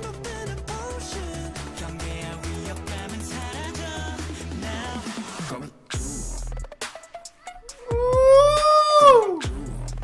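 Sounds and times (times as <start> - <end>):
pop track with deep bass: 0.0 - 10.0
man singing falsetto: 7.9 - 9.5.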